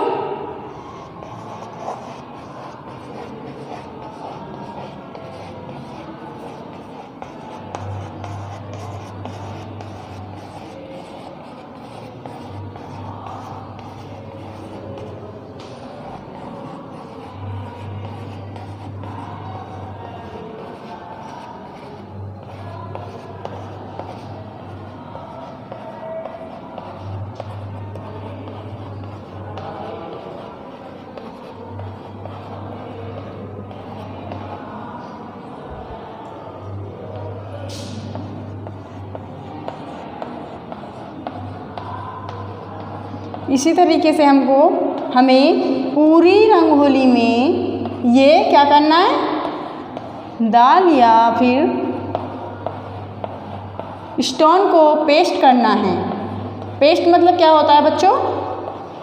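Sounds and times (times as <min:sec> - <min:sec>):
chalk scratching on blackboard: 0:00.7 - 0:35.0, 0:37.2 - 0:43.8, 0:50.8 - 0:59.0
sharp chalk tap: 0:37.7 - 0:43.4, 0:52.1 - 0:53.9.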